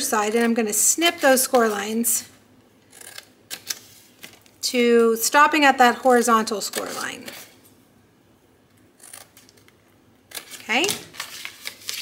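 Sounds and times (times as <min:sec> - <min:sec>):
card rustling: 0:10.4 - 0:12.0.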